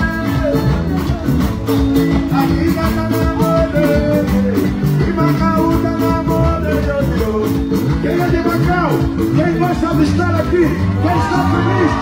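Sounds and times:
band playing dance music: 0.0 - 12.0.

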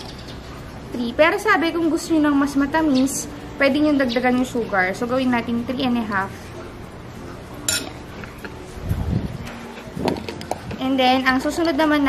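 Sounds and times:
metal spoon clinking on glass: 7.7 - 8.0.

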